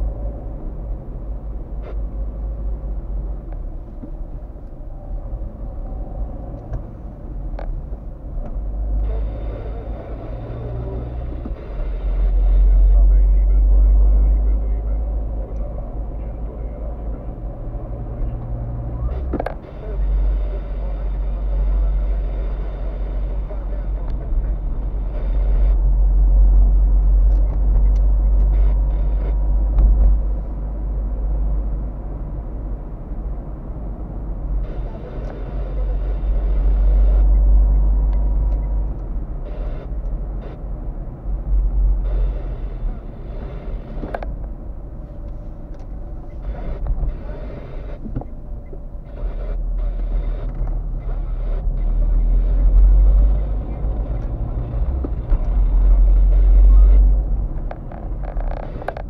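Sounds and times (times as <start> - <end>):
car engine and road rumble: 0.0 - 59.0
tyre and road noise: 0.0 - 59.0.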